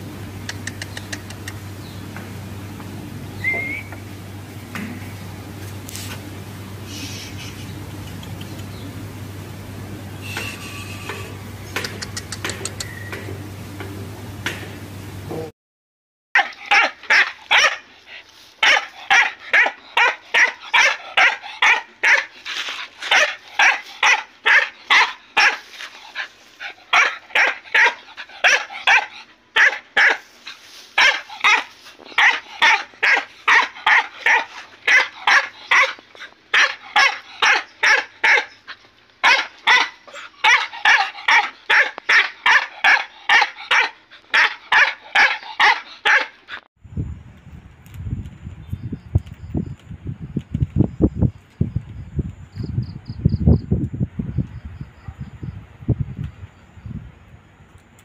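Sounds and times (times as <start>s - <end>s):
dog barking rapidly: 16.4s - 17.9s, 18.6s - 22.4s, 23.0s - 25.7s, 26.6s - 30.3s, 31.0s - 38.6s, 39.2s - 46.4s.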